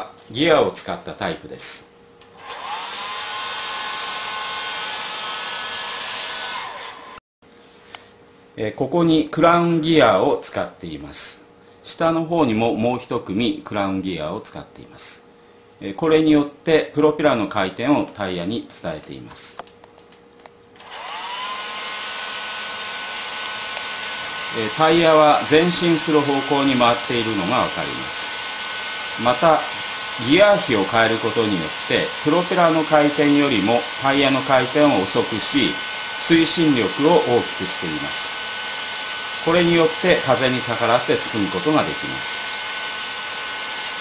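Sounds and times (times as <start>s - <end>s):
electric blower motor whine: 2.4s - 7.2s, 20.8s - 44.0s.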